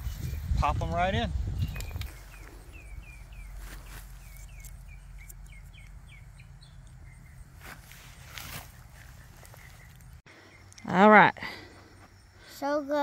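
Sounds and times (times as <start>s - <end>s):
small bird chirping: 1.4s - 11.3s
hands rustling garden soil: 3.3s - 5.9s, 7.5s - 10.2s.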